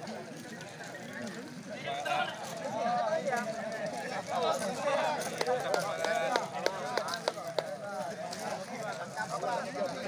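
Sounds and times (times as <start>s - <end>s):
crowd of men talking: 0.0s - 10.0s.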